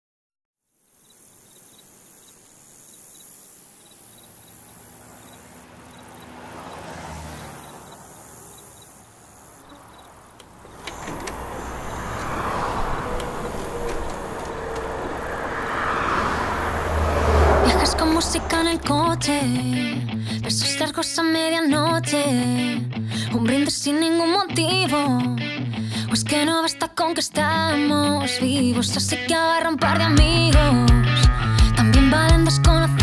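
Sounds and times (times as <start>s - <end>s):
vehicle-like rumble: 4.3s - 20.0s.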